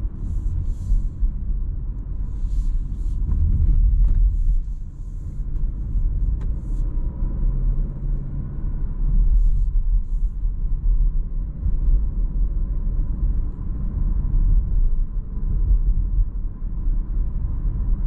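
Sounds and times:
car engine and road rumble: 0.0 - 18.0.

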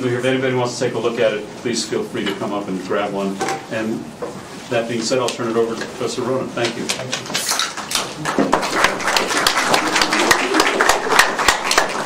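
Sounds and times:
audience applauding: 7.8 - 12.0.

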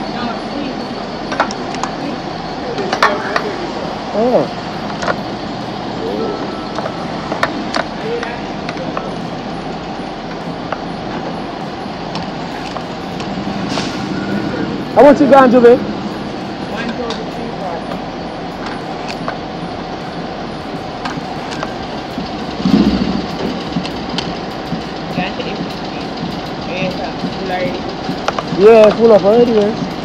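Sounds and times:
faint voices: 0.0 - 30.0
traffic: 0.0 - 30.0.

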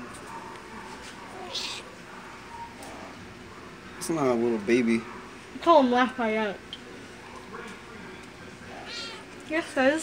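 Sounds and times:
cat meowing faintly: 1.3 - 1.9, 8.7 - 9.3.

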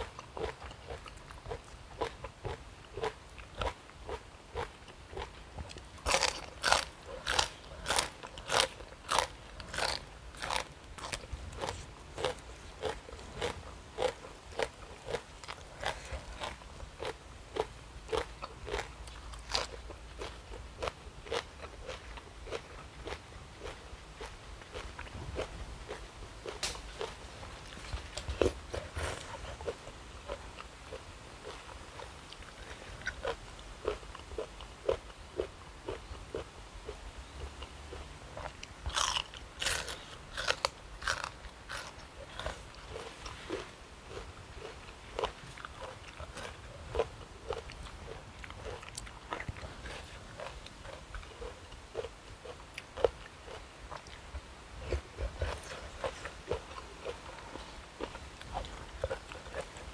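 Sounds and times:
crunchy chewing of raw vegetables: 0.0 - 59.9.

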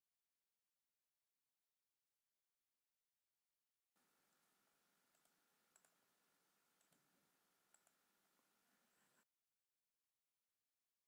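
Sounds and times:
computer mouse clicks: 4.3 - 6.0, 6.8 - 9.2.

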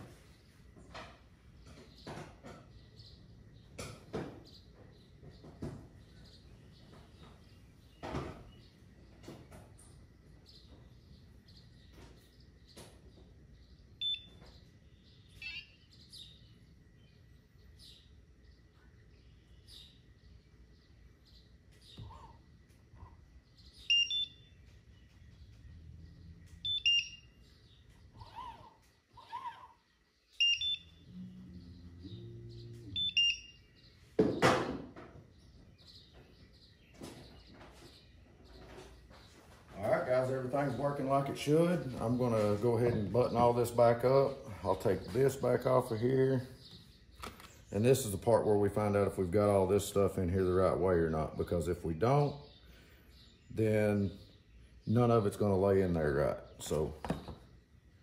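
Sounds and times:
short electronic beeps: 14.0 - 14.4, 23.8 - 24.5, 26.6 - 27.3, 30.4 - 31.0, 32.9 - 33.6.

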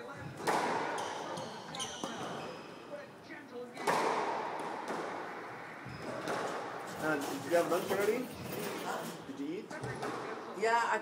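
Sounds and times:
shoes squeaking on court floor: 0.0 - 3.0, 3.8 - 10.3.

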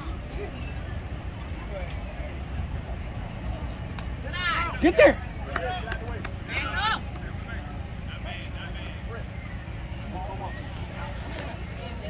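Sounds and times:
crowd rumble: 0.0 - 12.0
faint distant voices: 0.0 - 12.0
spectators shouting: 3.7 - 12.0.

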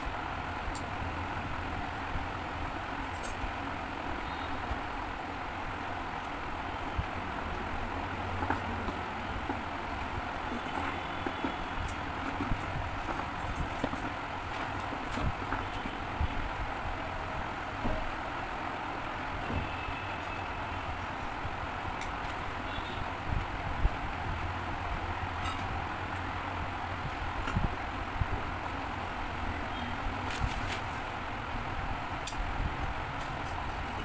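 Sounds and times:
steady background noise: 0.0 - 34.0
clothespins clicking and tapping: 3.0 - 3.4.

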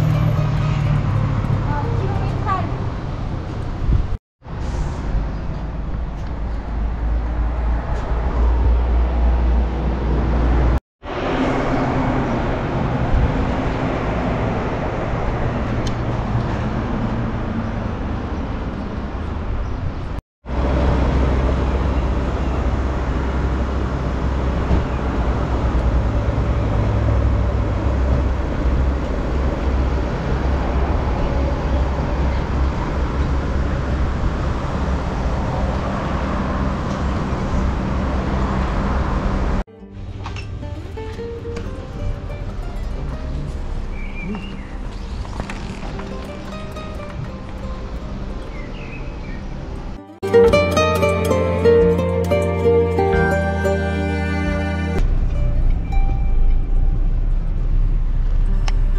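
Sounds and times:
road traffic and car engines: 0.0 - 58.9.

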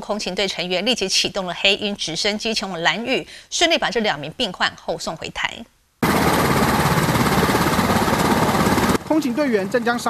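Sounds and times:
helicopter engines and rotor: 6.0 - 10.0.

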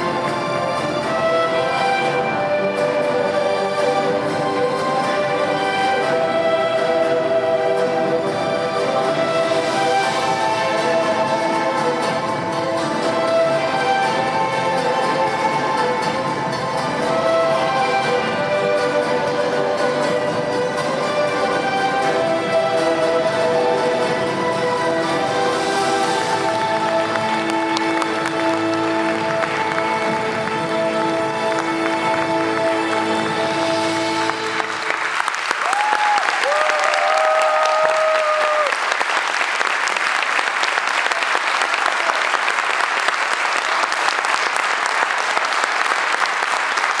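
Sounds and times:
slow string music: 0.0 - 35.8
audience applause and cheering: 0.0 - 47.0.

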